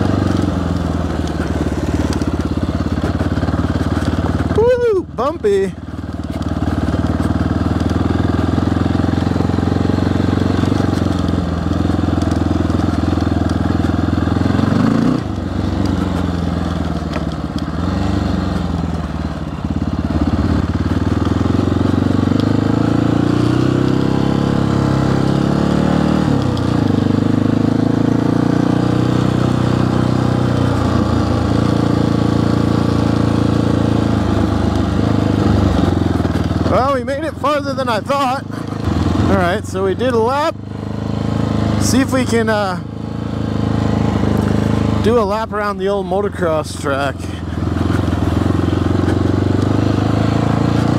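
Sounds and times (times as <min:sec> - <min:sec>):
motorcycle engine revving: 0:00.0 - 0:50.9.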